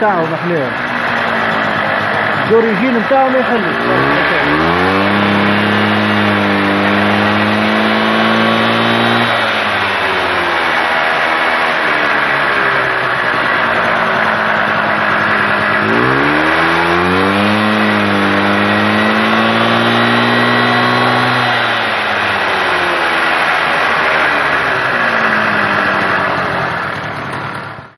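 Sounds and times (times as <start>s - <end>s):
moped engine revving: 0.0s - 27.9s.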